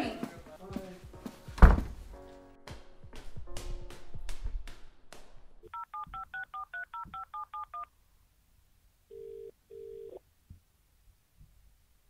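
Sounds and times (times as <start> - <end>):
telephone keypad beeps: 5.7 - 7.9
telephone ringing tone: 5.7 - 7.9, 9.1 - 10.2.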